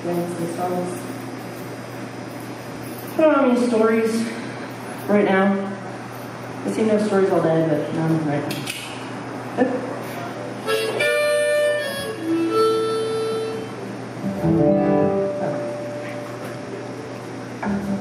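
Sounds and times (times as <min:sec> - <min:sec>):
acoustic guitar notes plucked: 0:14.2 - 0:16.8, 0:17.6 - 0:18.0.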